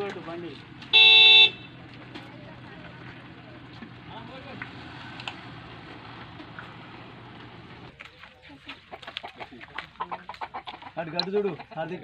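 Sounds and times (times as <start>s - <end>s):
chickens clucking: 7.3s - 12.0s.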